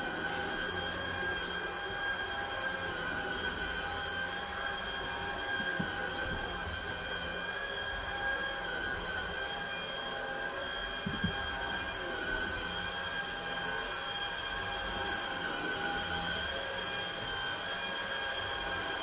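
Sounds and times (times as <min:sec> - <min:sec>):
vacuum cleaner motor whine: 0:00.0 - 0:19.0.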